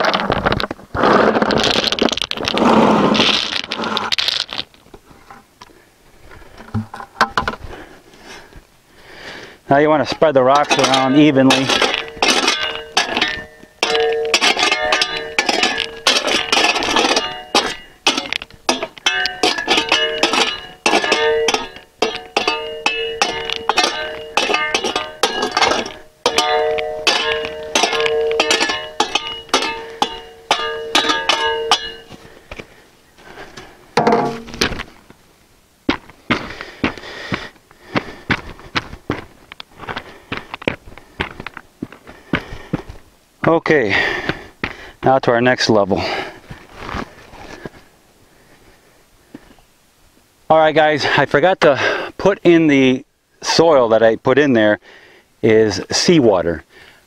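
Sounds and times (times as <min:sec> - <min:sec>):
shovel scraping rocks: 0:00.0 - 0:04.8, 0:09.9 - 0:32.4, 0:33.2 - 0:35.0
rocks shifting underfoot: 0:00.0 - 0:08.7, 0:09.7 - 0:48.0.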